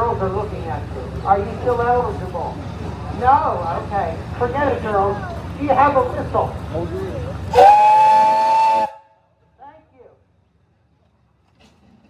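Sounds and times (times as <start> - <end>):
steam whistle chord: 7.5 - 9.1.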